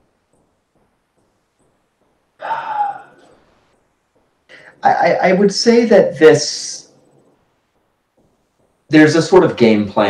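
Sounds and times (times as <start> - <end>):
person sighing: 2.4 - 3.4, 4.5 - 4.8.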